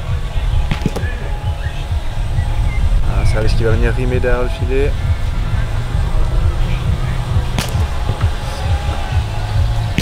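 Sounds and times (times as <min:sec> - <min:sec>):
low rumble: 0:00.0 - 0:10.0
ball being struck: 0:00.6 - 0:01.3, 0:07.5 - 0:09.2.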